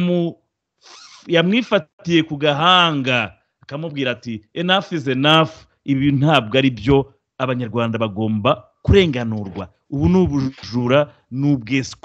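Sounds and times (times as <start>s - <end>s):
person speaking: 0.0s - 12.0s
hissy intake of breath: 0.8s - 1.3s.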